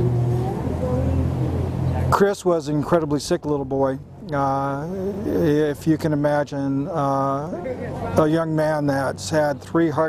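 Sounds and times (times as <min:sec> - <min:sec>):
low motor rumble: 0:00.0 - 0:10.0.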